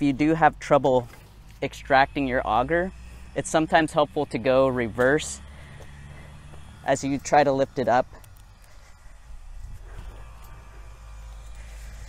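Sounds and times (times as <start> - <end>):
soil scraping against auger: 0.0 - 12.0
steady low rumble: 0.0 - 12.0.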